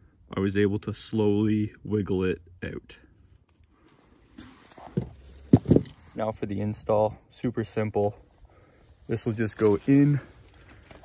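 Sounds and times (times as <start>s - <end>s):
rustling: 3.4s - 6.4s, 8.2s - 11.0s
dull thumps: 4.4s - 6.2s.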